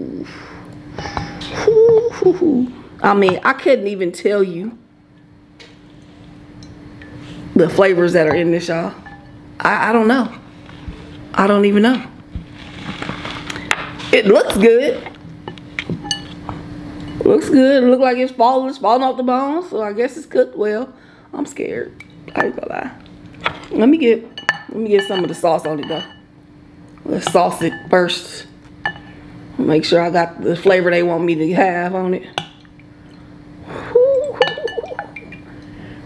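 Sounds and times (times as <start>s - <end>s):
faint steady hum: 0.0s - 36.0s
wavering hum: 32.4s - 36.0s
clinks against glass bowl: 34.3s - 35.4s.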